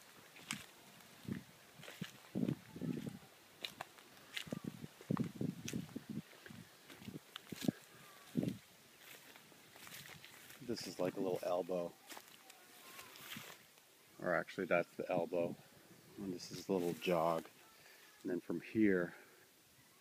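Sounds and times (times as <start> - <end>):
footsteps in long grass and leaves: 0.0 - 13.8, 16.1 - 17.4.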